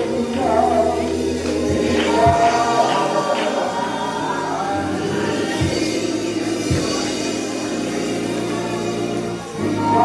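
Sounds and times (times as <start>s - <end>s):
church keyboard chords: 0.0s - 10.0s.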